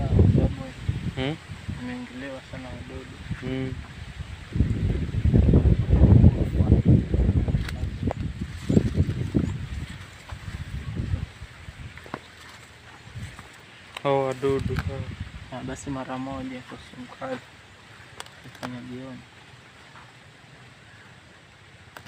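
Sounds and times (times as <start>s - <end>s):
sharp clicks: 18.1s - 18.8s.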